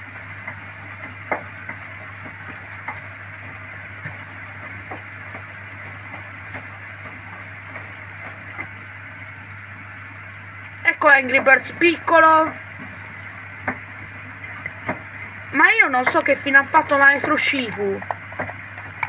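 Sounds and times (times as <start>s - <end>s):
washing machine churning water: 0.0s - 19.0s.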